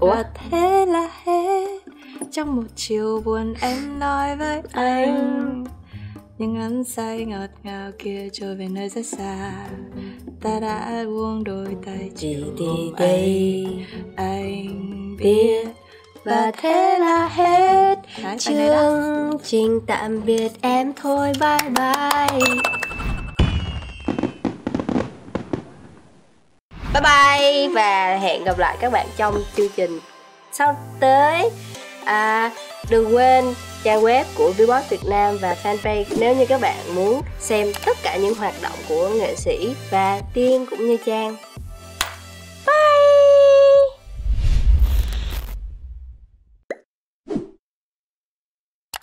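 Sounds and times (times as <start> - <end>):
fireworks pops and crackles: 23.3 - 26.2.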